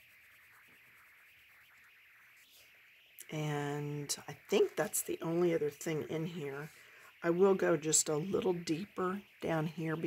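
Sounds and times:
coloured pencil scratching paper: 0.0 - 2.5.

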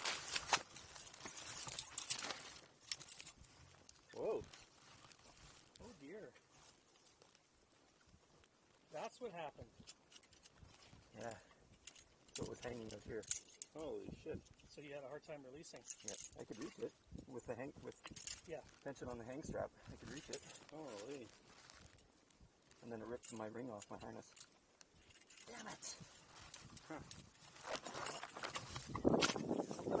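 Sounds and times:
grass rustling against microphone: 0.0 - 30.0.

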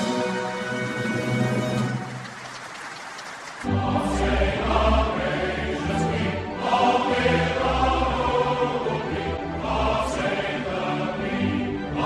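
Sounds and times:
voices singing a hymn: 3.7 - 12.0.

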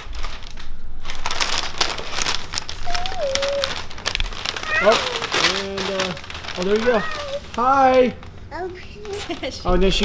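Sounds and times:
foil gift wrap crinkling: 0.0 - 10.0.

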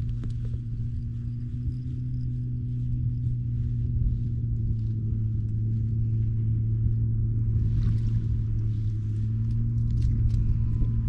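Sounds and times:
engine idling: 0.0 - 11.0
wind rumbling on microphone: 0.0 - 11.0.

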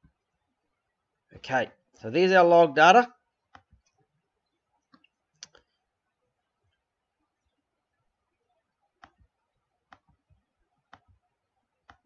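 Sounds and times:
computer mouse clicks: 9.0 - 9.3, 9.9 - 12.0.

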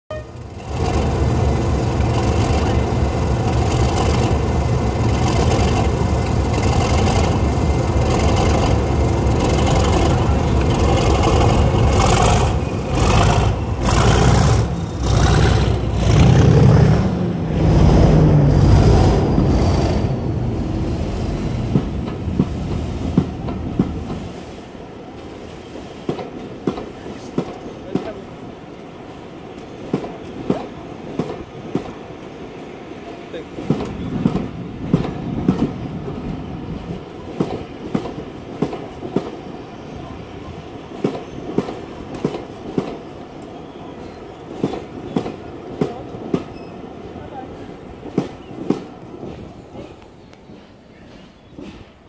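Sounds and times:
diesel locomotive engine thrashing: 0.4 - 24.2.

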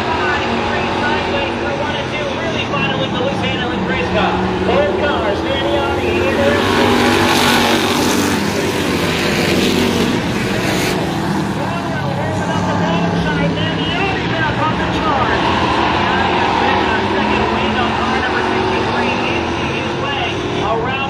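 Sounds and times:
race car engines: 0.0 - 21.0.

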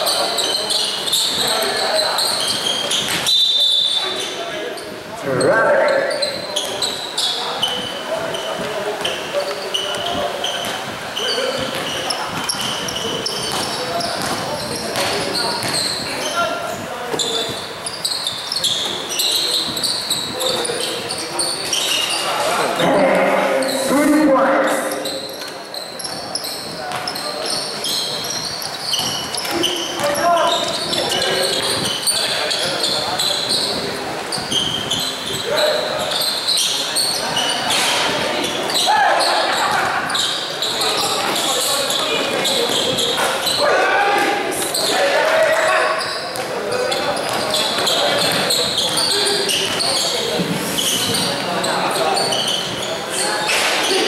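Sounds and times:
voices and shouts: 5.2 - 6.4, 22.3 - 25.3, 38.3 - 40.4, 43.2 - 47.2
basketball bouncing on court: 9.8 - 17.7, 28.0 - 32.0, 46.0 - 51.5.

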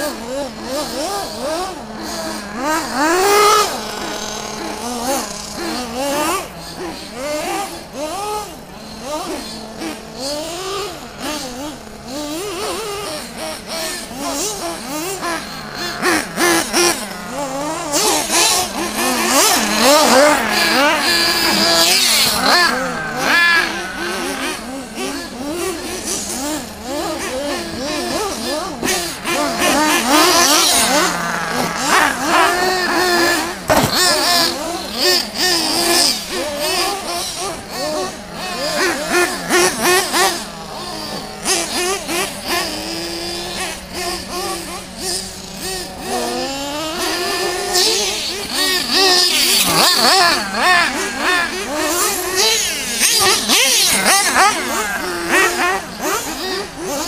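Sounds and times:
rc car engines revving: 0.0 - 57.0.

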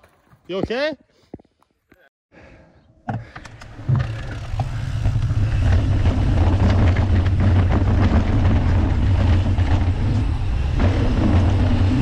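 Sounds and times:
bike tyres rolling on dirt: 3.6 - 12.0.

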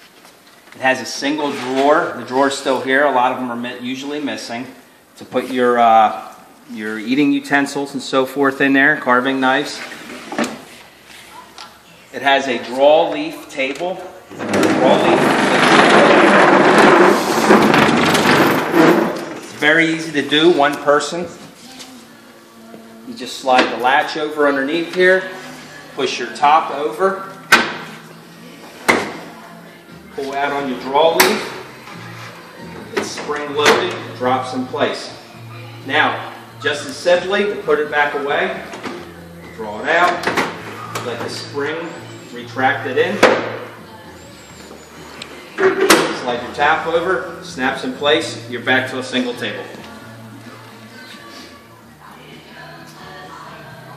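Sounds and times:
table top scraping on wood: 14.3 - 19.4.

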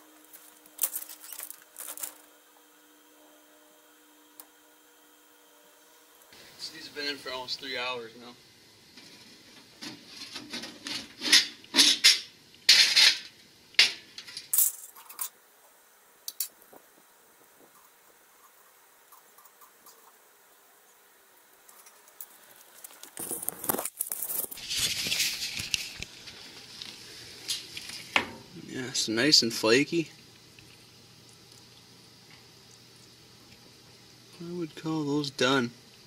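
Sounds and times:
rustling: 21.6 - 28.2.

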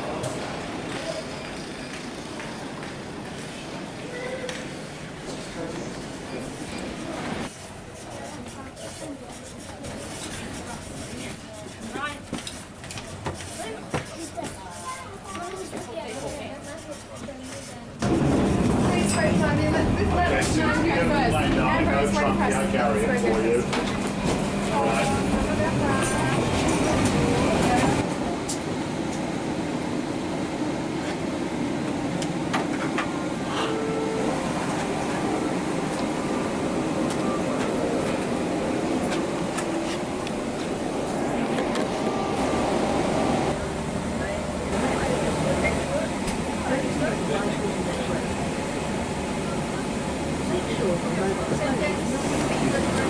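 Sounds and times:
indistinct chatter: 0.0 - 29.5, 33.0 - 53.0.

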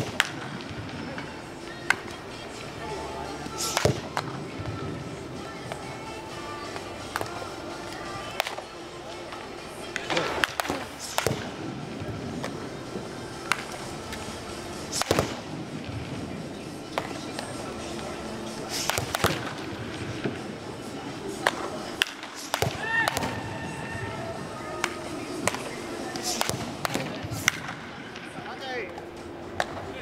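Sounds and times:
bat striking baseballs: 0.0 - 2.3, 3.4 - 5.0, 6.6 - 20.6, 21.3 - 23.8, 24.8 - 29.9
background music: 0.0 - 30.0
indistinct voices: 0.5 - 30.0.

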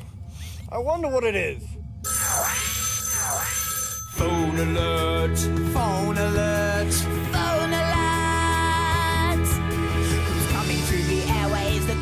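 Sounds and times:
high ringing tones: 2.0 - 5.4
swooping synthesized alert tone: 2.1 - 4.7.

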